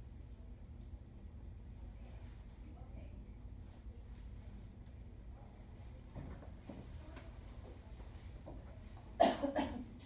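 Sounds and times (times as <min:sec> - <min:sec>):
person coughing: 0:09.2 - 0:09.9.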